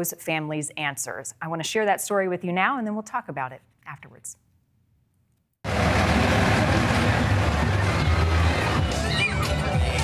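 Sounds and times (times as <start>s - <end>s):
crowd voices: 5.7s - 10.0s
parade music: 5.7s - 10.0s.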